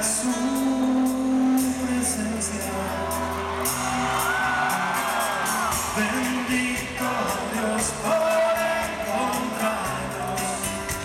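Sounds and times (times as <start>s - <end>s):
acoustic guitar: 0.0s - 11.0s
live band playing slow song: 0.0s - 11.0s
person singing: 0.0s - 11.0s.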